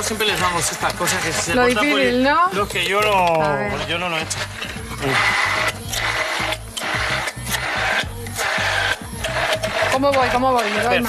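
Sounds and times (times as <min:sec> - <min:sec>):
immersion blender whirring: 0:00.0 - 0:11.0.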